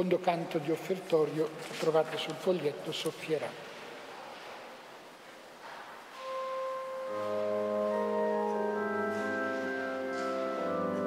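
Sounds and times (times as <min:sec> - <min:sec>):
organ playing hymn chords: 0:06.2 - 0:11.0.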